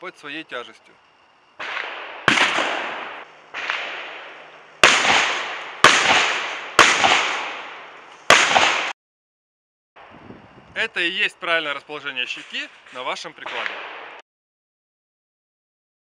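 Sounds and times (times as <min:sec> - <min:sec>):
gunshots with echo: 0:01.6 - 0:09.0, 0:13.4 - 0:14.2.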